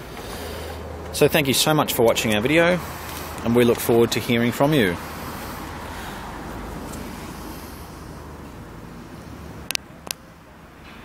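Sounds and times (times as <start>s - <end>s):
background traffic noise: 0.0s - 11.0s.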